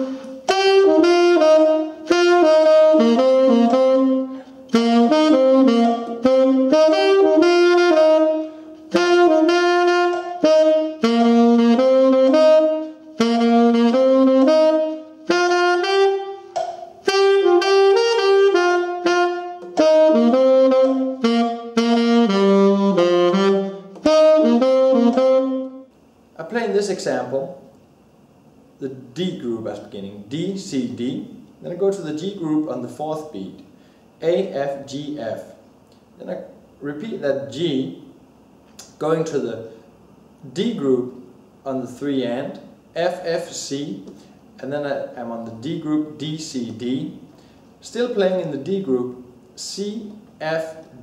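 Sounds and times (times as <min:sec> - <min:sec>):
tenor saxophone jazz-blues solo: 0:00.0 - 0:26.0.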